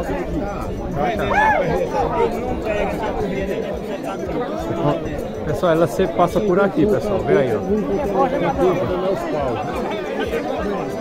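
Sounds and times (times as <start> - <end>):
men talking at once: 0.0 - 11.0.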